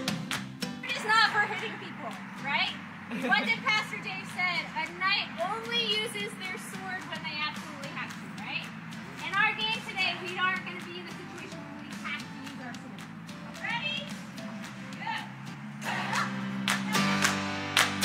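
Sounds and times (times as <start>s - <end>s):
soft background music: 0.0s - 18.0s.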